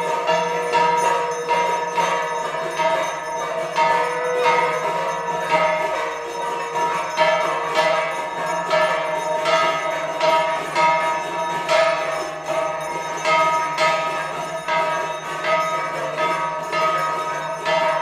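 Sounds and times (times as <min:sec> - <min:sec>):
bell ringing: 0:00.0 - 0:18.0.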